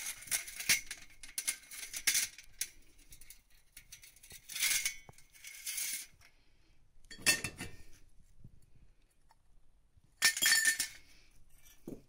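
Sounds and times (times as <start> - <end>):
metal tubes clattering on steel: 0.0 - 6.2, 10.2 - 11.0.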